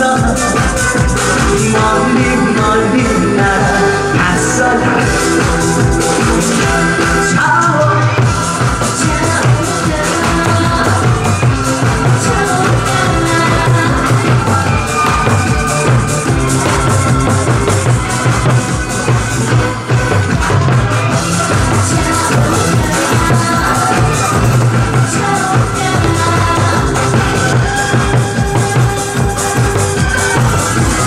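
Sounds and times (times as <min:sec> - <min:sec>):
backing track with driving beat: 0:00.0 - 0:31.0
barrel drums struck rapidly: 0:08.2 - 0:31.0.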